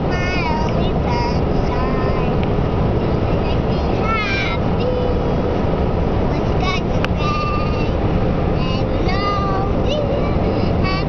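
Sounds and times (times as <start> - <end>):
girl singing: 0.0 - 5.5, 6.2 - 8.0, 8.6 - 11.0
car road and engine noise: 0.0 - 11.0.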